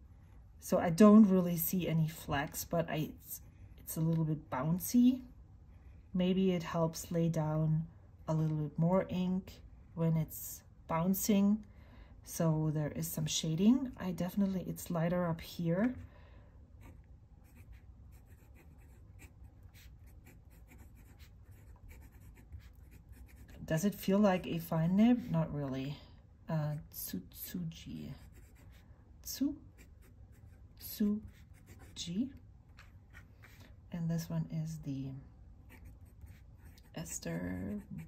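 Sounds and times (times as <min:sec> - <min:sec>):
pen nib scratching on paper: 0:16.8 - 0:23.7, 0:28.2 - 0:28.8, 0:29.7 - 0:32.2, 0:35.7 - 0:38.0.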